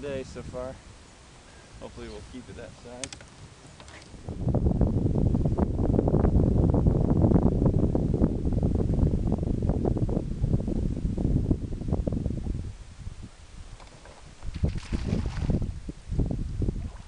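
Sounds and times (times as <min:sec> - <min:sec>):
wind buffeting microphone: 0:01.7 - 0:17.0.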